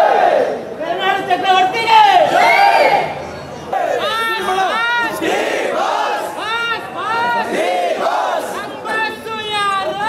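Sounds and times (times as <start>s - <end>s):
crowd of men shouting: 0.0s - 10.0s
fans cheering and chanting: 0.0s - 10.0s.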